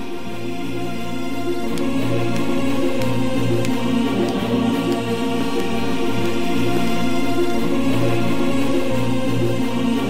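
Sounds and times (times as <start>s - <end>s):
choir-like voice pad: 0.0s - 10.0s
dramatic sustained orchestral chords: 0.0s - 10.0s.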